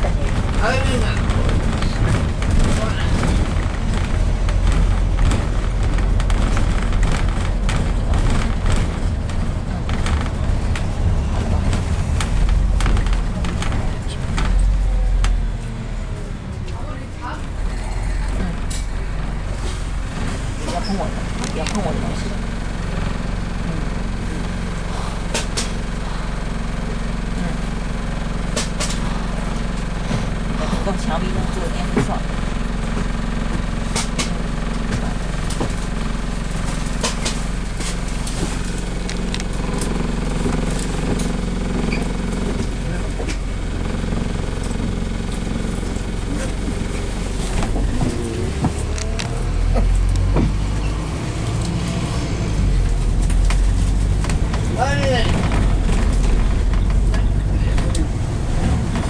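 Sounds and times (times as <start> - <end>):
bus engine idling: 0.0 - 59.0
clicks and rattles: 0.2 - 15.4.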